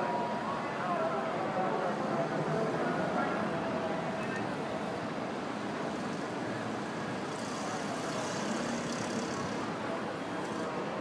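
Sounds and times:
distant city traffic: 0.0 - 11.0.

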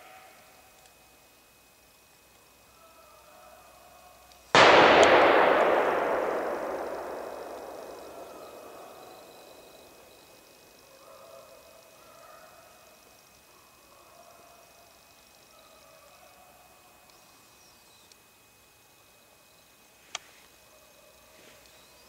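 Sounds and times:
rifle gunshot echoing: 4.6 - 10.7.

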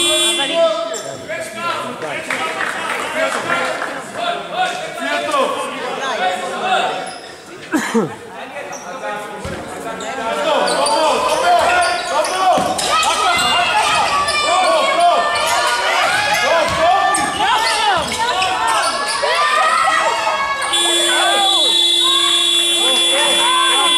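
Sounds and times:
sneakers squeaking on wooden court: 8.7 - 19.4
players shouting: 10.2 - 23.9
buzzer tone: 20.7 - 23.9.

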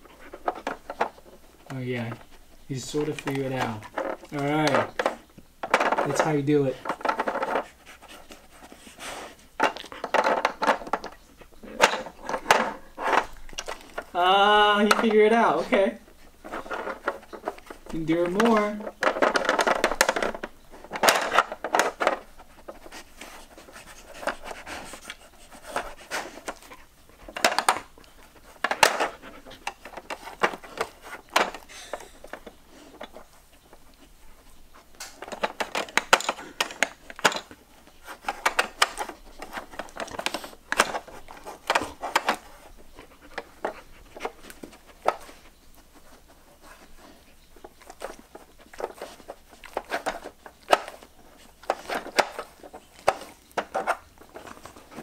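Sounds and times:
plastic puzzle board clicking: 9.6 - 15.7, 16.4 - 34.0, 34.7 - 55.0.

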